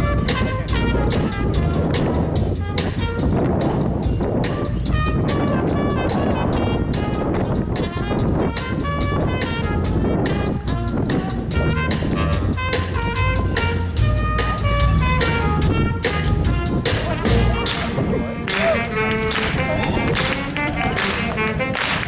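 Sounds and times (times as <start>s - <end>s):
electric bass: 0.0s - 22.0s
saxophones: 0.0s - 22.0s
trumpets: 0.0s - 22.0s
drum beat: 11.6s - 21.6s.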